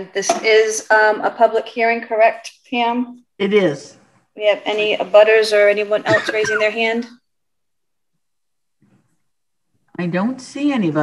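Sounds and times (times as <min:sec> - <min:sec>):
woman speaking: 0:00.0 - 0:07.2.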